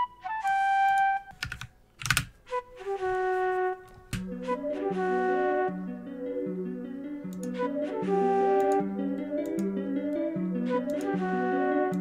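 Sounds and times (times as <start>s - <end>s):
breathy flute melody: 0.0s - 1.4s, 2.4s - 12.0s.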